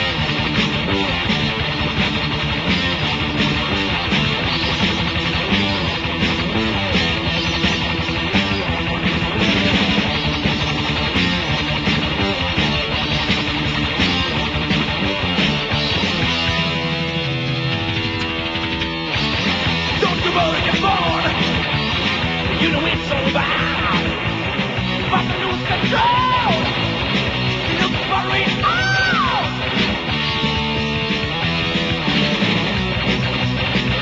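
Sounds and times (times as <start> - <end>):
heavy metal band playing: 0.0 - 34.0.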